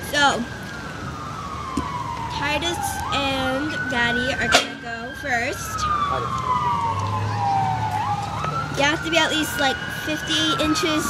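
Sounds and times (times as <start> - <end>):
go-kart engines whining: 0.0 - 11.0.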